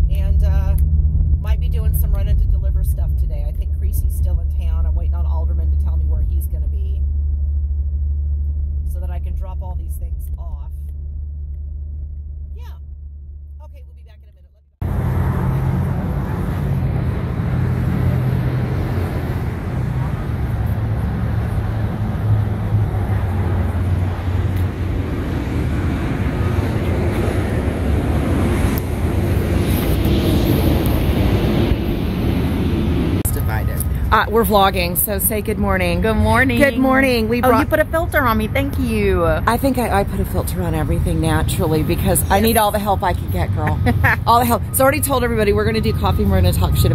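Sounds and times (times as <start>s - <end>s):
car cabin rumble: 0.0s - 31.8s, 33.2s - 46.9s
traffic: 0.0s - 46.9s
wind buffeting microphone: 14.8s - 46.9s.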